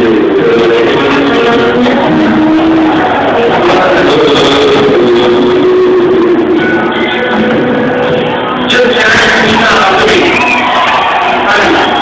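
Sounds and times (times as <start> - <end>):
distorted live band music: 0.0 - 12.0.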